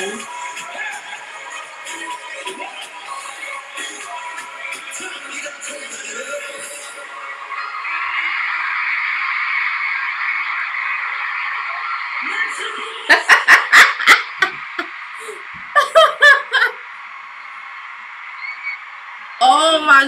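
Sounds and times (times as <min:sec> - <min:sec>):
concert crowd screaming: 0:00.0 - 0:20.0
woman giggling: 0:13.1 - 0:16.8.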